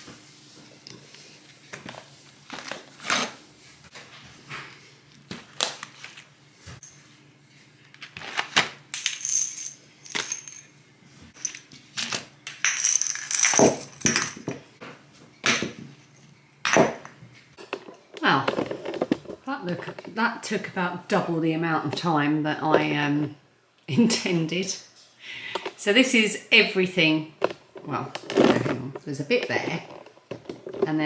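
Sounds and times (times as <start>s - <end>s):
glass and tile clinking: 9.0s - 10.7s, 12.5s - 14.5s.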